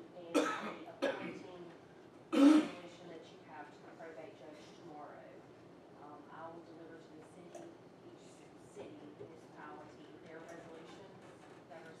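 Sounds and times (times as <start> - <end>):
woman coughing: 0.3 - 1.5, 2.3 - 2.9.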